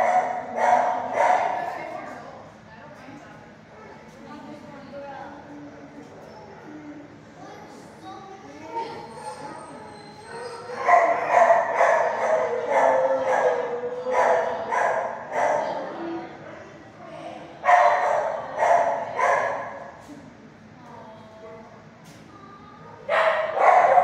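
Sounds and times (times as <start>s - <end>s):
dog barking: 0.0s - 1.7s, 10.7s - 15.8s, 17.6s - 19.9s, 22.9s - 24.0s.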